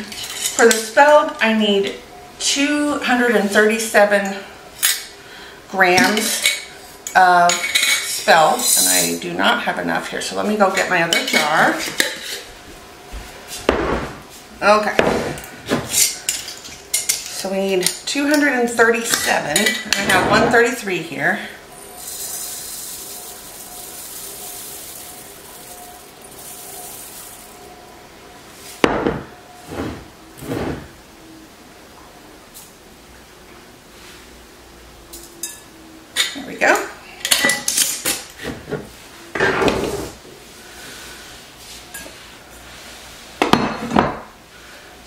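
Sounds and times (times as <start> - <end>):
glass jar and bowls clinking: 7.5 - 9.1, 21.7 - 27.9
grains pouring into a bowl: 21.7 - 27.9.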